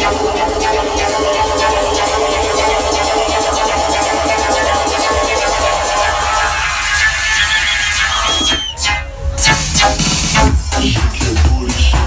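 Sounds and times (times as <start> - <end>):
loud electronic house music: 0.0 - 12.0.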